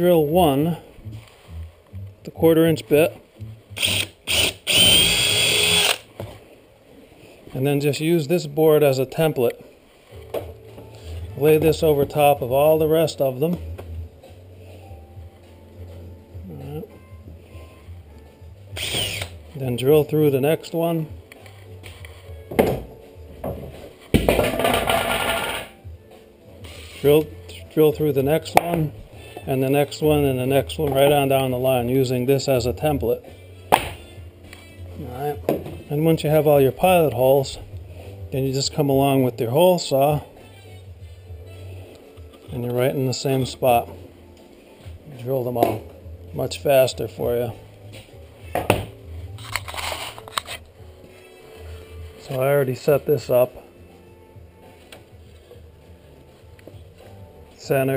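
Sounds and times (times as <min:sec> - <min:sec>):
faint background music: 0:00.0 - 0:57.9
cordless drill drilling wood: 0:03.8 - 0:06.1, 0:18.8 - 0:19.4.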